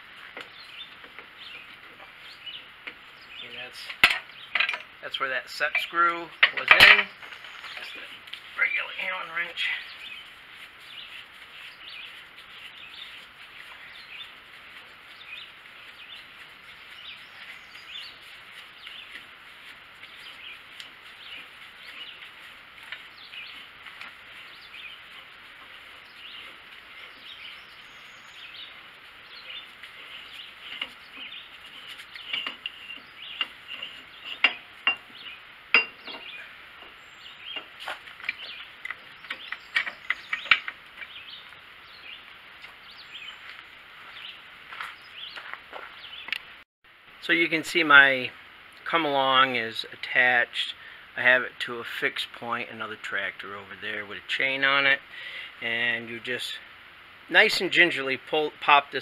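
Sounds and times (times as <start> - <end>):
birds chirping: 0.0 - 46.6, 47.2 - 59.0
sharp metal clicks and knocks: 3.9 - 5.0, 5.6 - 7.1, 32.2 - 41.2.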